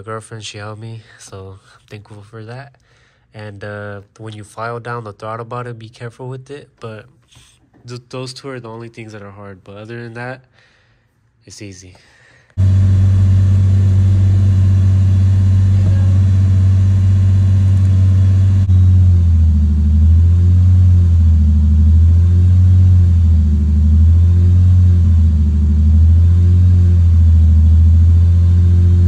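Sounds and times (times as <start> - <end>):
car engine idling high: 12.6 - 29.0.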